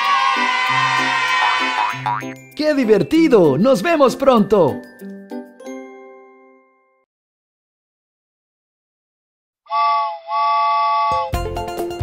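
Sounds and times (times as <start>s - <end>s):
cartoon steam train whistle: 0.0s - 2.0s, 9.7s - 11.4s
upbeat children's music: 0.9s - 6.5s, 11.1s - 12.0s.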